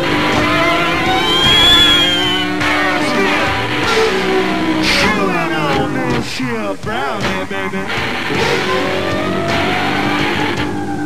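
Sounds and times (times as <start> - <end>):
singer's voice sliding in pitch: 0.0 - 6.3
drums: 0.0 - 11.0
electric guitar: 0.0 - 11.0.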